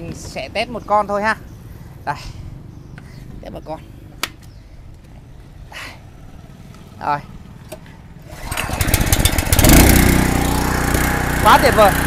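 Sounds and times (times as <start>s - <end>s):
engine running steadily: 4.0s - 12.0s
engine pull-started: 7.7s - 11.5s.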